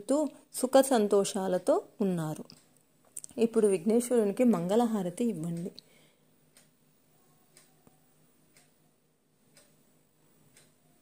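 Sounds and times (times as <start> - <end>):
soft regular ticking: 1.6 - 11.0.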